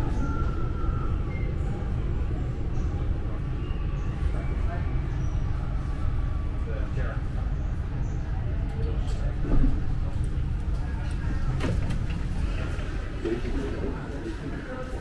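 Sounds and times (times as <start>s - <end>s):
train low rumble: 0.0s - 15.0s
train clunk: 11.2s - 14.5s.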